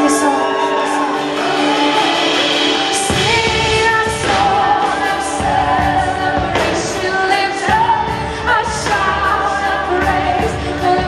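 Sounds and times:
worship band and singers: 0.0s - 11.0s
drum hits: 1.5s - 9.2s.

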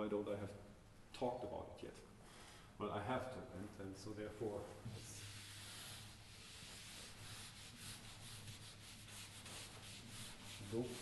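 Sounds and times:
eraser wiping a whiteboard: 4.9s - 11.0s.

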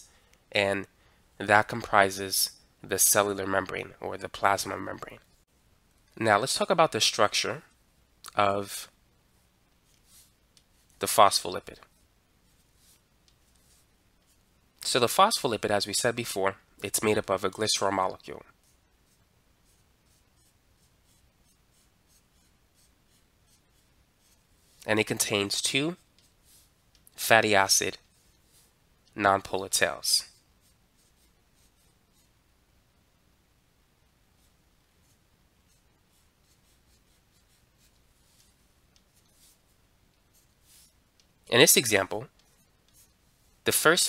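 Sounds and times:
man speaking: 0.5s - 5.2s, 11.0s - 11.9s, 14.8s - 18.4s, 24.8s - 26.0s, 27.2s - 28.0s, 29.1s - 30.3s, 41.5s - 42.3s, 43.6s - 44.0s
pen scratching on tablet: 9.8s - 11.0s, 11.8s - 14.4s, 18.5s - 27.0s, 30.4s - 32.4s, 34.4s - 41.0s, 42.3s - 43.6s.

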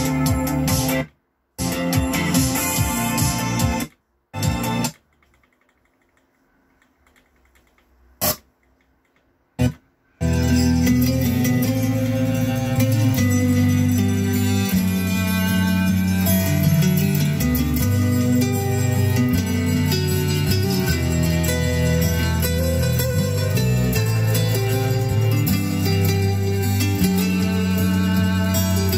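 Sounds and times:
music on radio: 0.0s - 5.0s, 9.6s - 28.9s.

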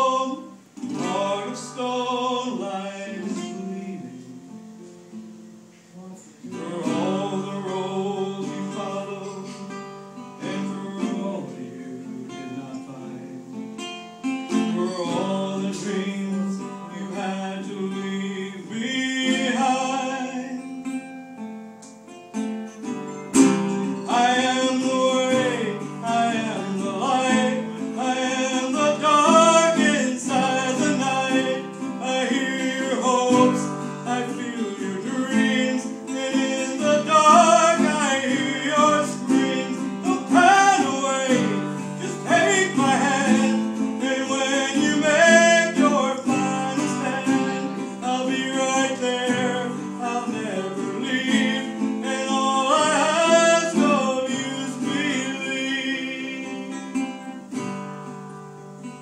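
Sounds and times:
man singing: 0.0s - 4.9s, 5.8s - 13.9s, 14.5s - 21.0s, 23.7s - 57.4s
resonator guitar chords: 0.0s - 59.0s.

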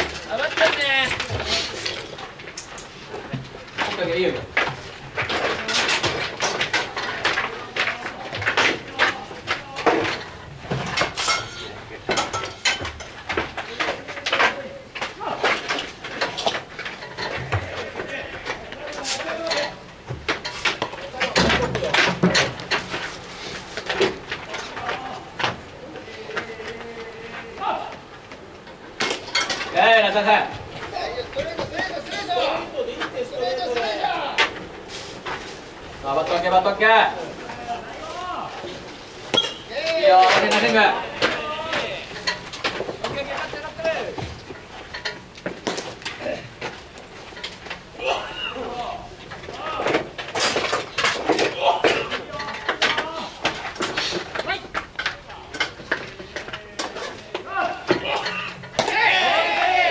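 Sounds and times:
baseball players shouting: 57.4s - 59.9s.

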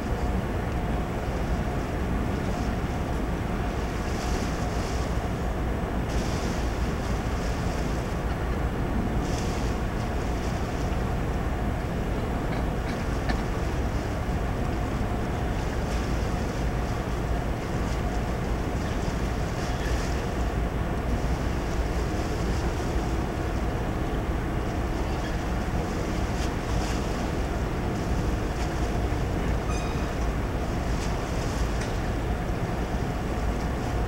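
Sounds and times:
faint steady hum: 0.0s - 34.0s
ship engines rumbling: 0.0s - 34.0s.

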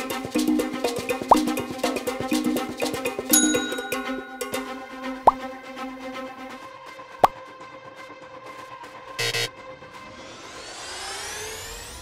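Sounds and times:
electronic music with held tones: 9.2s - 9.5s.

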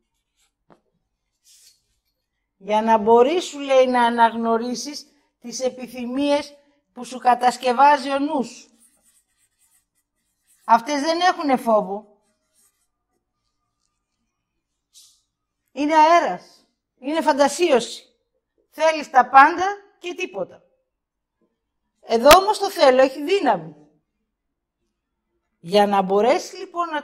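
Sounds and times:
marker soft hiss: 0.0s - 2.3s
marker scratching on paper: 0.0s - 2.4s, 7.5s - 15.4s.

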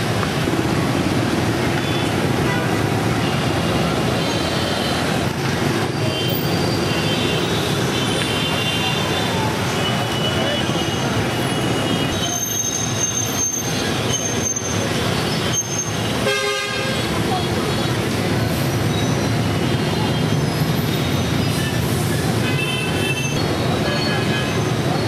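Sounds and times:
motorbike and car engines: 0.0s - 16.2s.

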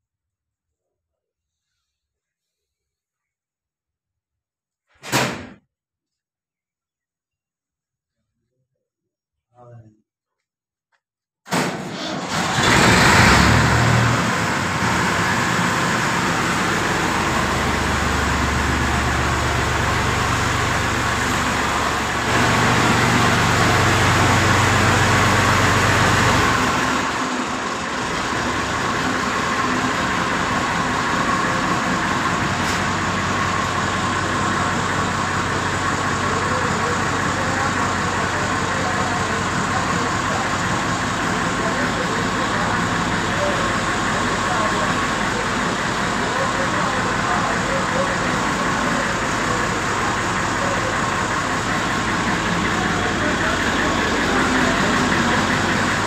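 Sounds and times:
tractor diesel engine revving: 11.9s - 56.0s.

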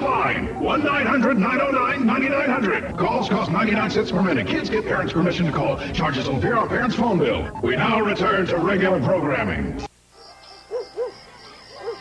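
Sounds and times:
low steady background: 0.0s - 12.0s.

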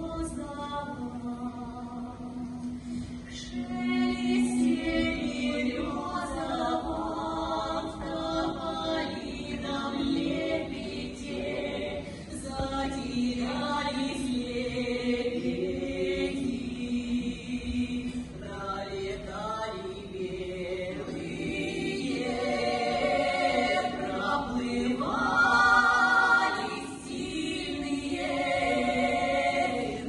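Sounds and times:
women singing in harmony: 0.0s - 30.0s.

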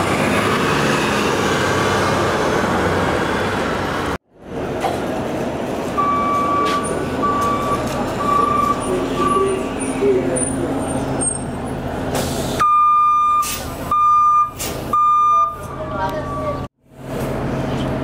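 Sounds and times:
bus engine idling: 4.3s - 18.0s
warning beeper beeping: 6.0s - 9.6s, 12.6s - 16.7s.

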